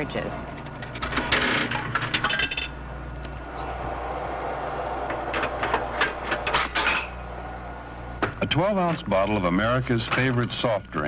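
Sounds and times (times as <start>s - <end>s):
steady mechanical noise with hum: 0.0s - 11.0s.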